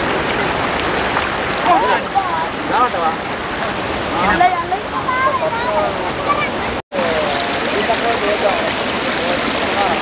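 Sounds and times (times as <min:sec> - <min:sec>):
flowing water rushing: 0:00.0 - 0:10.0
people talking: 0:01.6 - 0:10.0.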